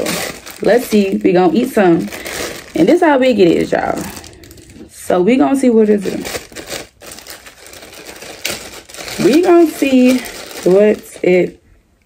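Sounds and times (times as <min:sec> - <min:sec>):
plastic bag crinkling: 0:00.0 - 0:05.0, 0:05.8 - 0:11.7.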